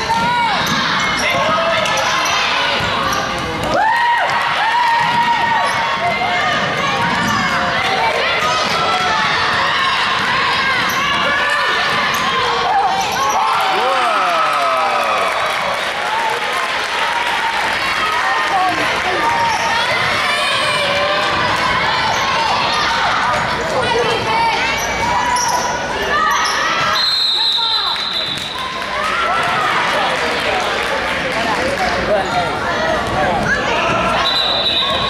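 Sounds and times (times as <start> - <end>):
sneakers squeaking: 0.0 - 3.7, 5.0 - 13.6
spectators talking: 0.0 - 35.0
referee's whistle: 26.9 - 28.6, 34.2 - 35.0.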